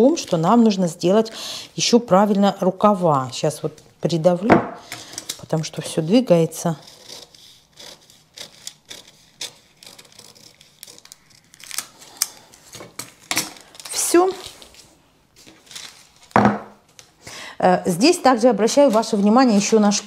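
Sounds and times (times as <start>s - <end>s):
scissors snipping paper: 6.8s - 12.4s
paper crinkling and rustling: 8.1s - 17.1s, 18.7s - 20.0s.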